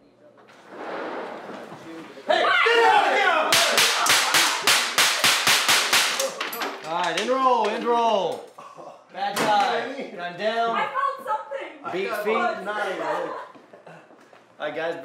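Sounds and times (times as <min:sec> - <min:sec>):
people shouting and screaming: 0:02.3 - 0:04.8
rapid gunshots: 0:03.6 - 0:06.3.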